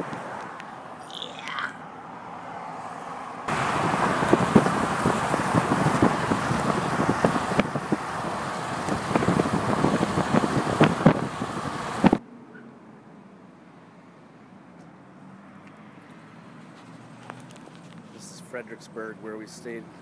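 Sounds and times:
car road and wind noise: 0:00.0 - 0:20.0
microphone buffeting crackles: 0:03.5 - 0:12.2.

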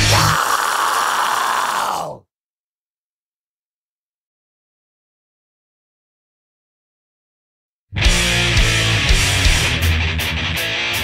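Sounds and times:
heavy metal drums and bass: 0:00.0 - 0:00.6, 0:08.0 - 0:11.0.

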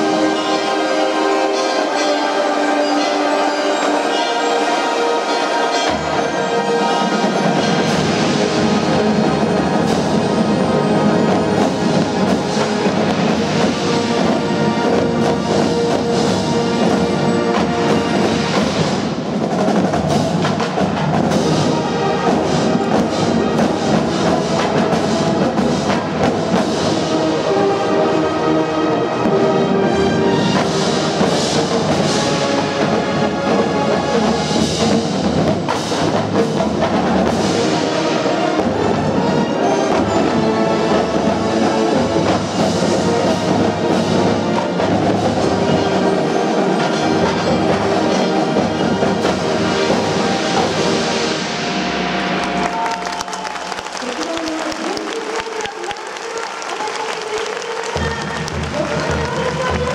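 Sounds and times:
marching drum line: 0:05.3 - 0:27.9, 0:29.2 - 0:59.9.

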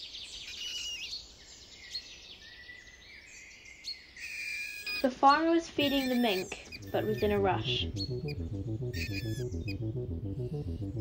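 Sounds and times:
dramatic background music: 0:06.0 - 0:11.0.

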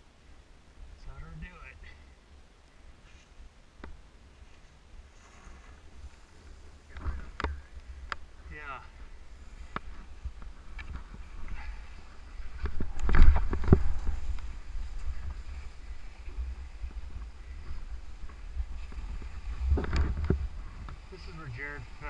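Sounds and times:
wind rumble on microphone: 0:03.8 - 0:22.0
skis scraping over snow: 0:04.3 - 0:07.2, 0:08.6 - 0:22.0.

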